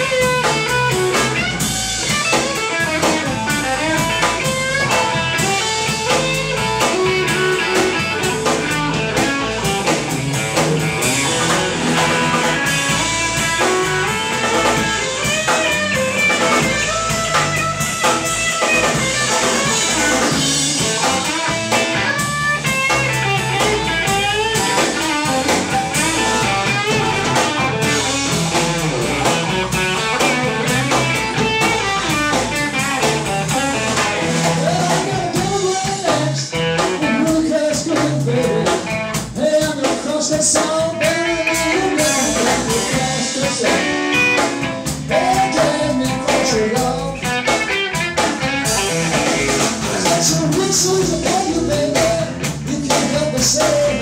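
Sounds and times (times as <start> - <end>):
bass guitar: 0.0 - 54.0
drum kit: 0.0 - 54.0
electric guitar lead line: 0.0 - 54.0.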